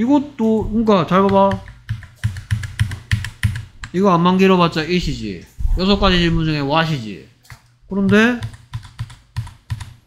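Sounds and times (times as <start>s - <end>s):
computer keyboard typing: 0.8s - 4.0s, 7.4s - 10.0s.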